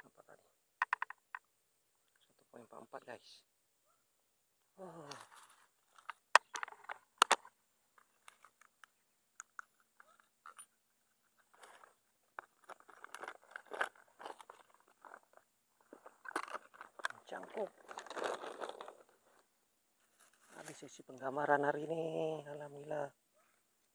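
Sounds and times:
sharp clicks and knocks: 0:00.8 - 0:01.5, 0:06.0 - 0:10.7
dry leaves and twigs rustling: 0:04.9 - 0:21.5.

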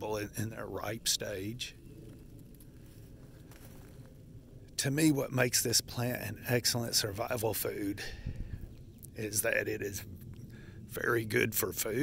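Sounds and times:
low steady outdoor rumble: 0:00.0 - 0:12.0.

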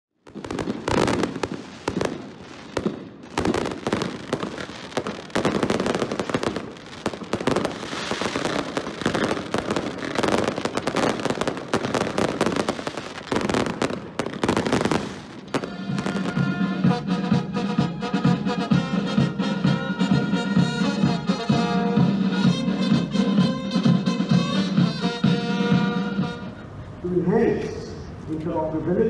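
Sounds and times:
fireworks bangs and crackles: 0:00.2 - 0:26.3.

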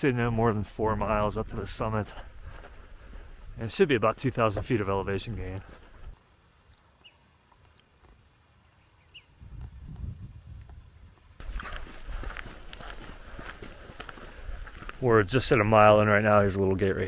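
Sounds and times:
footsteps on gravel: 0:00.4 - 0:06.2, 0:11.4 - 0:16.8.

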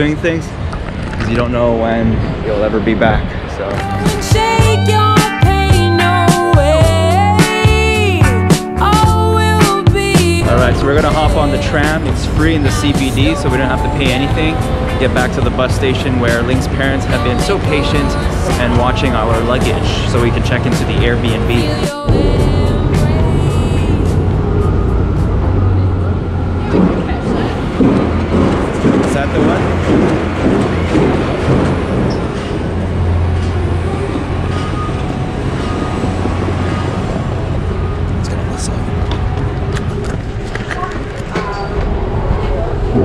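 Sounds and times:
traffic: 0:00.0 - 0:07.2, 0:10.3 - 0:43.0
background music: 0:03.6 - 0:40.7
indistinct voices: 0:09.8 - 0:43.0.

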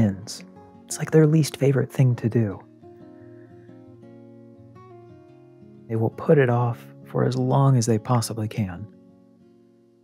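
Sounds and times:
gentle acoustic guitar: 0:00.0 - 0:10.0.

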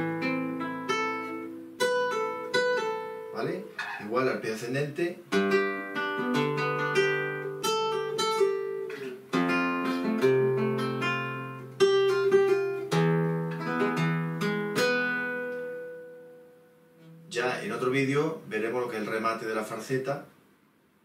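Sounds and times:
flamenco guitar playing: 0:00.0 - 0:04.4, 0:05.2 - 0:18.0.

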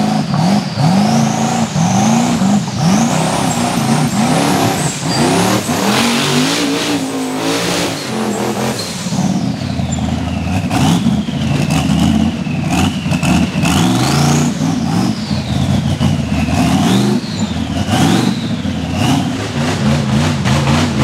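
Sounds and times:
buggy engine revving: 0:00.0 - 0:21.0.

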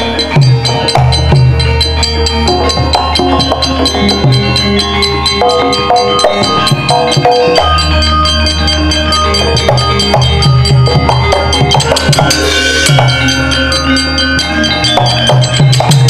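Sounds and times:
gamelan ensemble playing: 0:00.0 - 0:16.0.

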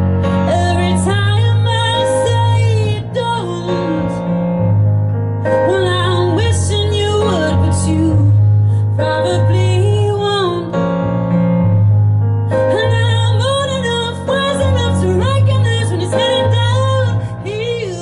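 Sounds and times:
sustained keyboard chords: 0:00.0 - 0:18.0
woman singing: 0:00.2 - 0:04.4, 0:05.4 - 0:11.0, 0:12.5 - 0:18.0.

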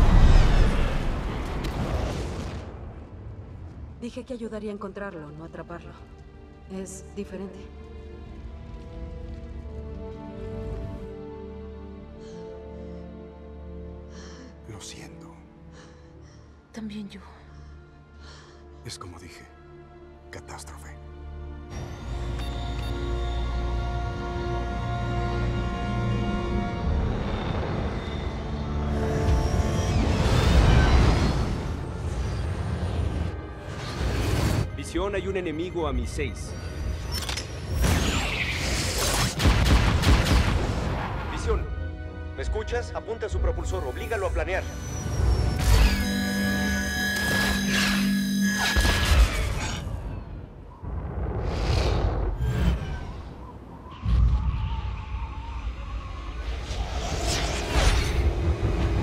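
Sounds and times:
orchestral music: 0:04.0 - 0:38.5, 0:39.3 - 0:51.3.

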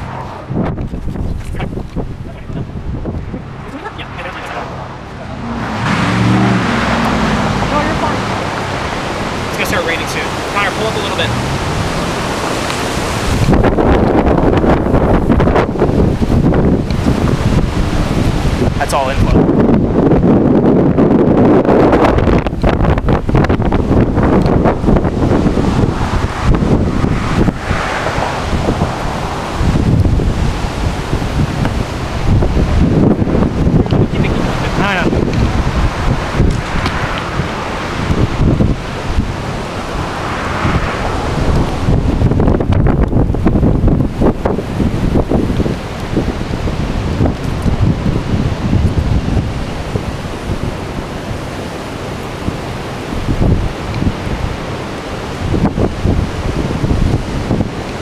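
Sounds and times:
gusty wind on microphone: 0:00.0 - 0:58.0.

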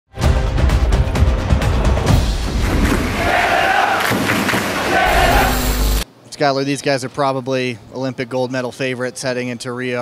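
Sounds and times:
intro music with heavy drums: 0:00.1 - 0:04.3
crowd cheering and chanting: 0:03.1 - 0:05.9.

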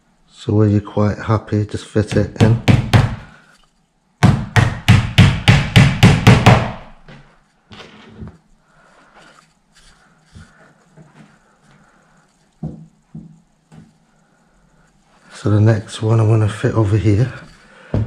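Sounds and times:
hammer tapping nail: 0:02.1 - 0:03.3, 0:04.2 - 0:06.8
handling and shuffling noises: 0:07.1 - 0:18.0.

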